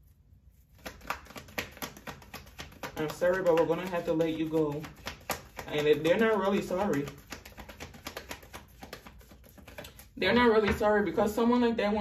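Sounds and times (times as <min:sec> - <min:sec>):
cards being shuffled: 0:00.5 - 0:10.2.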